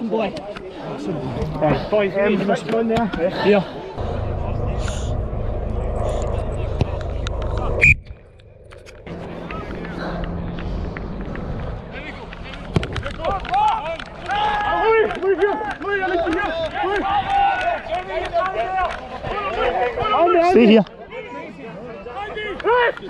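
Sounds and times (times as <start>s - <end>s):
wind rumbling on microphone: 4.0s - 14.2s
players shouting: 12.5s - 23.0s.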